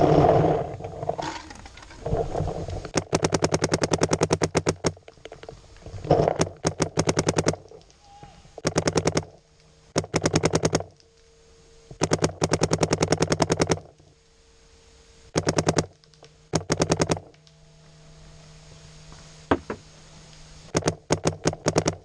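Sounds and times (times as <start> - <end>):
paintball marker firing rapidly: 3.0 - 5.0, 6.3 - 7.6, 8.6 - 9.3, 10.0 - 10.9, 12.0 - 13.8, 15.3 - 15.9, 16.5 - 17.2, 20.7 - 22.0.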